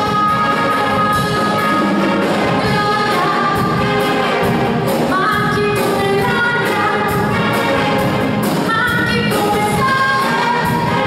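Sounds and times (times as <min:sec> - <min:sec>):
wind band playing: 0:00.0 - 0:11.0
woman singing into a microphone: 0:05.1 - 0:07.2, 0:08.7 - 0:11.0.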